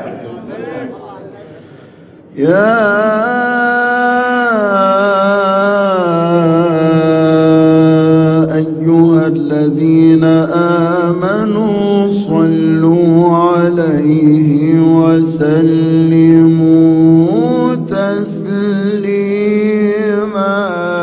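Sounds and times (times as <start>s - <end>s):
man chanting melisma: 0.0s - 21.0s.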